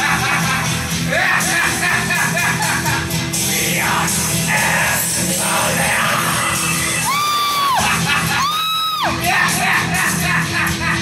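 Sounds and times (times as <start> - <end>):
rock backing music: 0.0 - 11.0.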